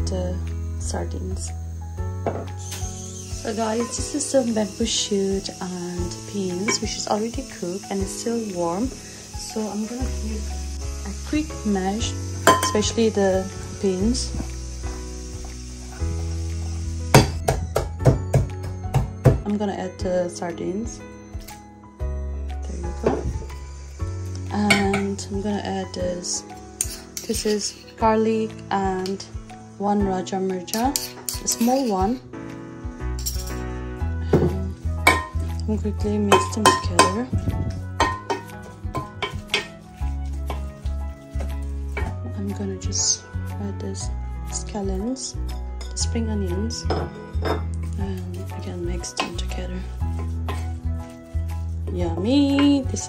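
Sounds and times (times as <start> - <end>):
background music: 0.0 - 53.0
pestle pounding in a pot: 12.4 - 12.9, 17.1 - 19.4, 34.4 - 35.5, 36.3 - 42.2, 49.2 - 53.0.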